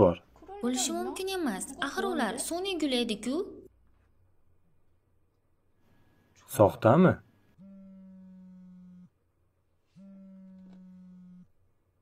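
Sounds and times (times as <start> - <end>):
phone buzzing on a table: 7.6 - 9.1, 10.0 - 11.6.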